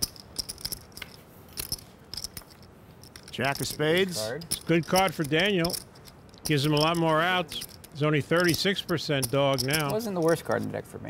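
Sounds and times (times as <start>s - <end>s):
poker chips clicking: 0.0s - 10.5s.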